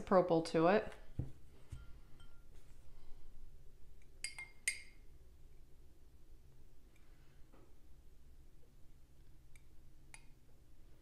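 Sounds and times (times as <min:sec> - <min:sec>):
metal spoon clinking on glass: 0:02.2 - 0:02.5, 0:04.2 - 0:05.0.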